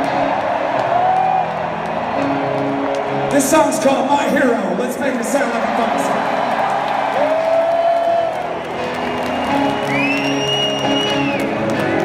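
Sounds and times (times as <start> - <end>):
large stadium crowd: 0.0 - 12.0.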